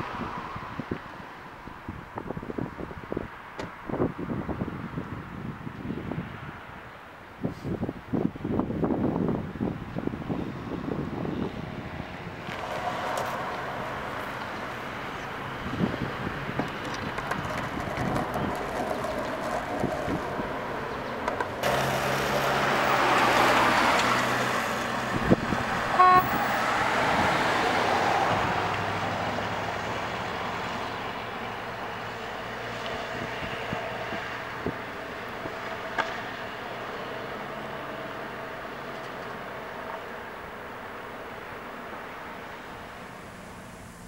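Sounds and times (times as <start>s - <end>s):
car passing: 0.0s - 5.0s, 10.3s - 44.0s
car horn toot: 25.9s - 26.5s.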